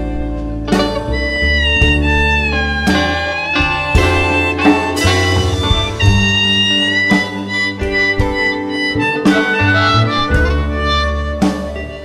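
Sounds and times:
acoustic guitar: 0:00.0 - 0:12.0
harmonica: 0:00.0 - 0:12.0
plucked double bass: 0:00.0 - 0:12.0.

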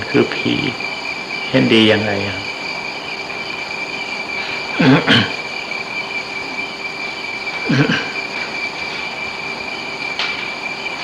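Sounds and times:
high whine: 0:00.0 - 0:11.0
tape hiss: 0:00.0 - 0:11.0.

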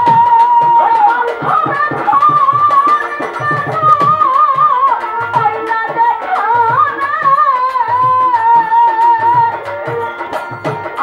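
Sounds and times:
woman singing folk song: 0:00.0 - 0:09.8
drum beats: 0:00.0 - 0:11.0
violin: 0:00.0 - 0:11.0.

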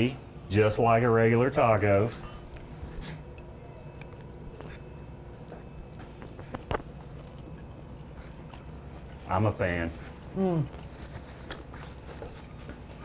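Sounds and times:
quiet chewing: 0:02.3 - 0:09.3.

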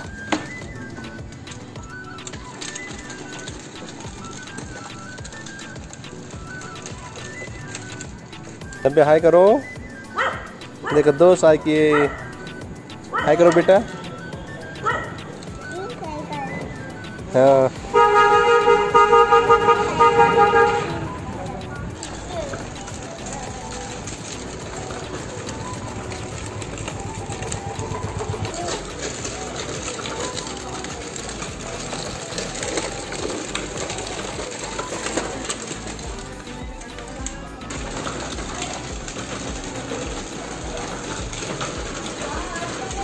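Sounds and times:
plastic wheels rattling over pavers: 0:00.0 - 0:43.0
toy horn high tone: 0:17.9 - 0:21.2.

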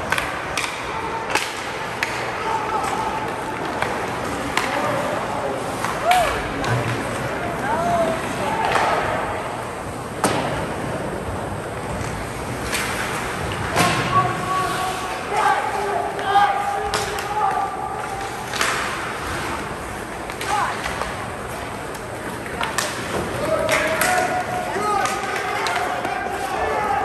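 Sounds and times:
hockey sticks and puck knocking: 0:00.0 - 0:09.4, 0:10.2 - 0:11.0, 0:11.7 - 0:27.0.

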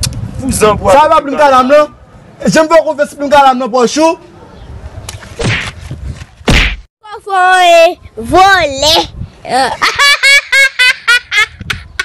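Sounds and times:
young boy laughing: 0:08.9 - 0:12.0.

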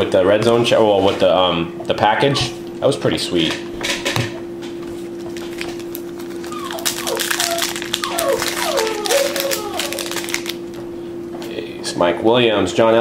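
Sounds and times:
steady hum: 0:00.0 - 0:13.0
foil wrapper crinkling: 0:05.0 - 0:10.8.

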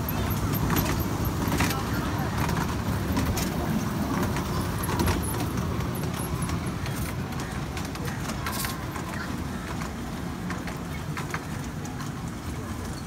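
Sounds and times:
carriages rattling and clicking: 0:00.0 - 0:13.0
ride train rumbling on track: 0:00.0 - 0:13.0.

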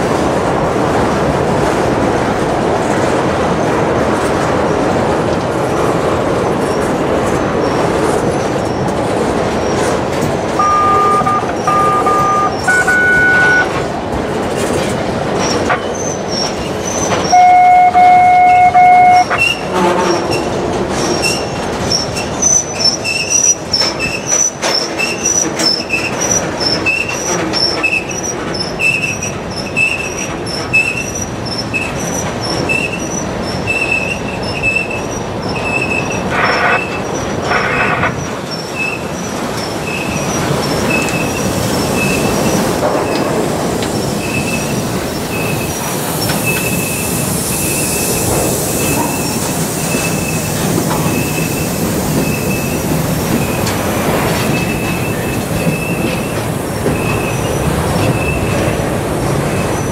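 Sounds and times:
freight cars rolling: 0:00.0 - 0:59.9
wheels clicking over rail joints: 0:00.0 - 0:59.9
crossing bell ringing: 0:10.5 - 0:13.9, 0:17.3 - 0:19.5
train horn blast: 0:10.6 - 0:13.8, 0:17.3 - 0:20.4.

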